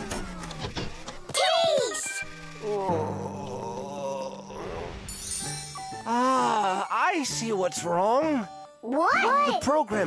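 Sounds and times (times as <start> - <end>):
soft background music: 1.2 - 10.0
cartoon character groaning: 2.6 - 4.8
wordless vocal sounds: 2.6 - 5.1.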